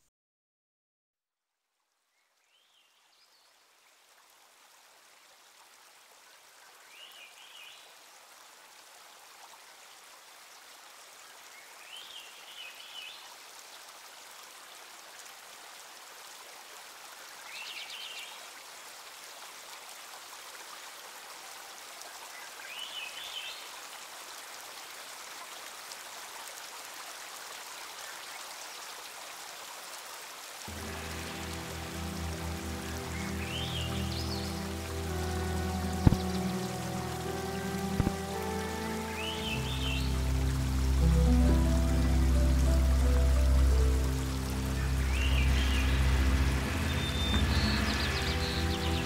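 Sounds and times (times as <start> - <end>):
stream running over gravel: 2.4 - 49.0
bird chirping: 30.8 - 36.8, 44.8 - 49.0.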